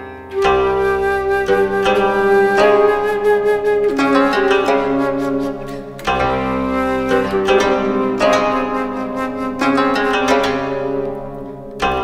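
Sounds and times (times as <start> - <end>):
plucked string accompaniment: 0.0 - 12.0
woodwind melody: 0.3 - 11.1.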